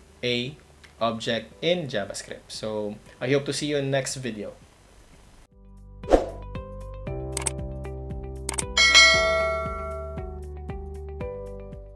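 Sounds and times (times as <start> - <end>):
background music: 0.1 - 3.6, 5.5 - 11.9
short clicks: 7.4 - 7.6, 8.5 - 8.7
bright bell-like chime: 8.8 - 10.3.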